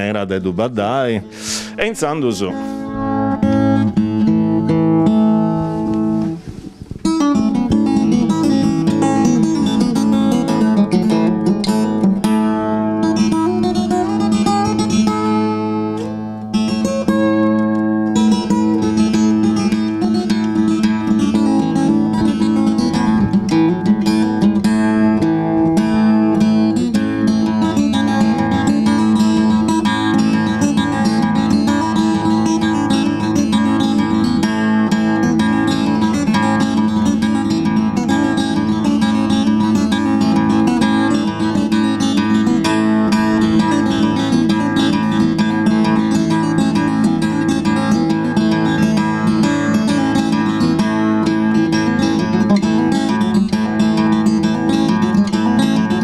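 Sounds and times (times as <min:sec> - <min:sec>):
solo guitar dance tune: 0:00.0 - 0:56.0.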